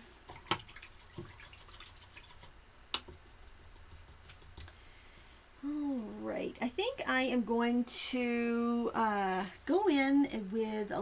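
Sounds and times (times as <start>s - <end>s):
water drips: 0.3s - 3.2s.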